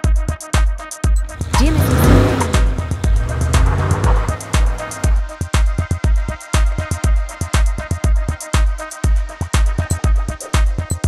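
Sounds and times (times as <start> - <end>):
electronic music with steady beat: 1.1 - 7.2
car engine revving effect: 1.3 - 5.3.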